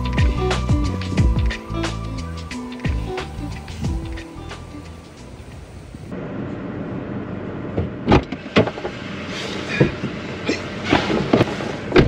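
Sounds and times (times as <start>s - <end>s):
background music: 0.0s - 5.6s
car cabin background noise: 0.0s - 12.0s.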